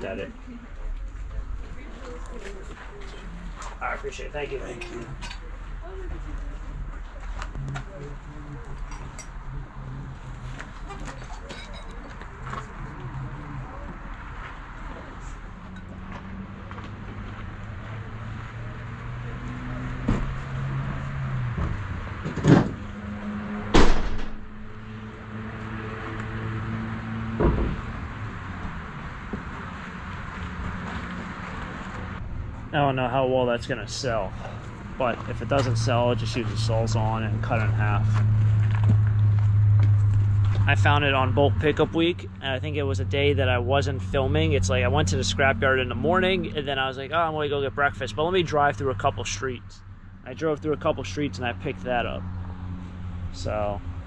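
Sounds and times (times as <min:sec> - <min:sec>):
vehicle engine humming: 0:00.0 - 0:54.0
loud thumps: 0:23.7 - 0:24.6
deep steady tone: 0:32.1 - 0:54.0.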